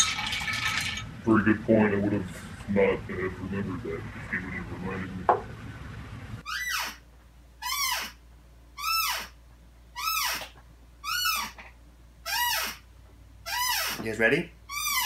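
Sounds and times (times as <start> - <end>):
creaking office chair squeak: 6.4 - 7.0, 7.6 - 8.2, 8.8 - 15.0.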